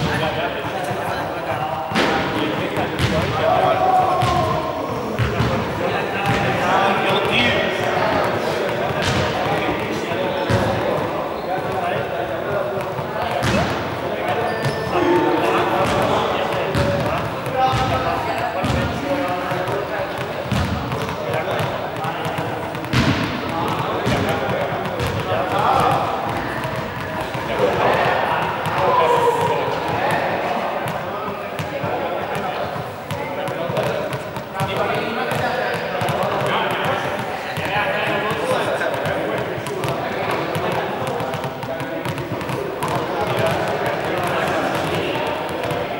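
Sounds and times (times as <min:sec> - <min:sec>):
indistinct echoing voices: 0:00.0 - 0:45.9
balls hitting hard floor: 0:01.9 - 0:45.9.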